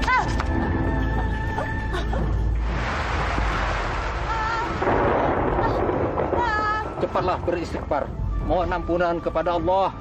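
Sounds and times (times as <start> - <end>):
loud dense rumbling: 2.6 - 8.0.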